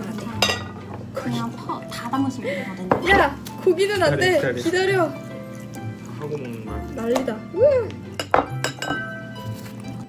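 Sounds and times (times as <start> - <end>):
spatula clinking against glass: 8.1 - 9.5.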